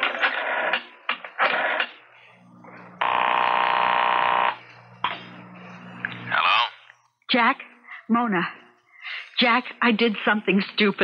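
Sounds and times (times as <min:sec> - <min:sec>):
telephone ringing: 0:00.0 - 0:05.9.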